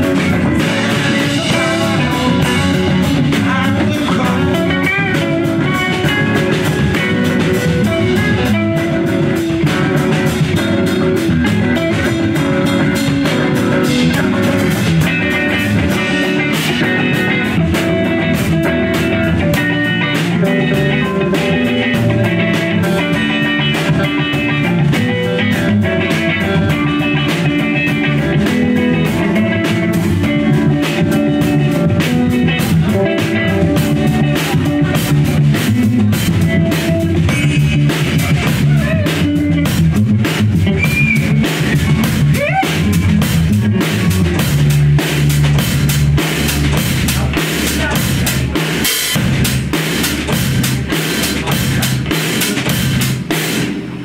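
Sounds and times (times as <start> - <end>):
drum kit: 0.0 - 54.0
electric guitars: 0.0 - 54.0.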